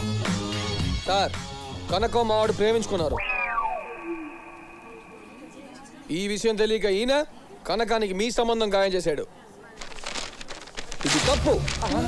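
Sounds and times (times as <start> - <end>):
faint steady tones: 3.1 - 6.4.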